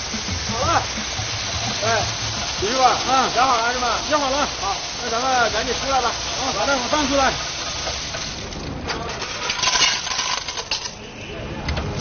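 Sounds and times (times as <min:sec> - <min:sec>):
snail shells clattering on metal: 0:09.2 - 0:11.0.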